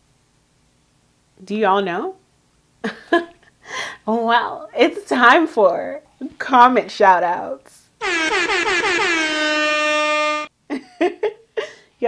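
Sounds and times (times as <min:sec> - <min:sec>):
air horn blasts: 0:08.0 - 0:10.5.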